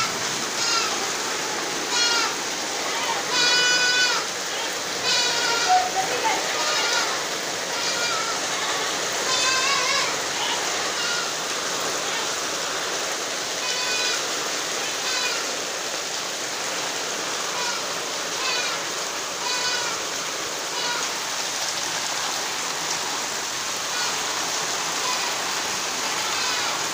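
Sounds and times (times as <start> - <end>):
heavy rain and hail falling: 0.0 - 26.9.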